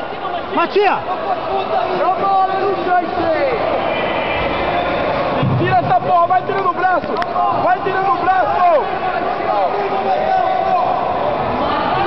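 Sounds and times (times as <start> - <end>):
crowd murmur: 0.0 - 12.0
people shouting and calling: 0.0 - 12.0.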